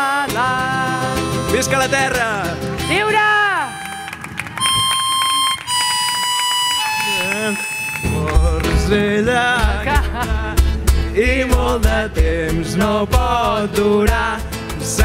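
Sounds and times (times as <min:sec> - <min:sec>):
person singing: 0:00.0 - 0:02.0, 0:07.2 - 0:15.0
acoustic guitar: 0:00.0 - 0:15.0
cajon beat: 0:00.0 - 0:15.0
harmonica holding long notes: 0:00.4 - 0:10.9.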